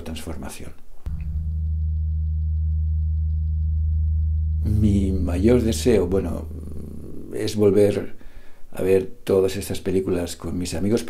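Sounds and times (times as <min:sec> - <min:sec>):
low steady drone tone: 0:01.1 - 0:07.4.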